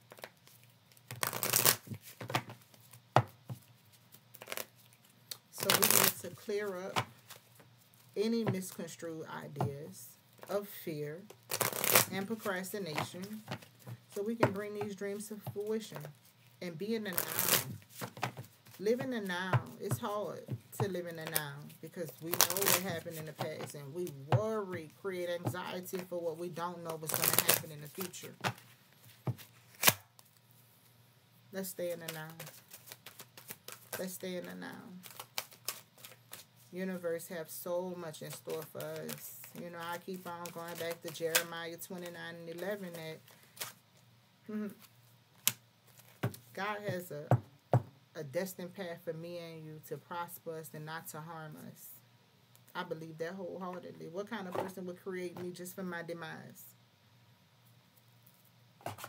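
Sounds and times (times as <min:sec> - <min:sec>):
cards being shuffled: 0:00.0 - 0:08.7, 0:11.3 - 0:16.4, 0:17.1 - 0:26.1, 0:26.8 - 0:30.4, 0:31.8 - 0:36.7, 0:38.1 - 0:43.8, 0:58.3 - 0:59.0.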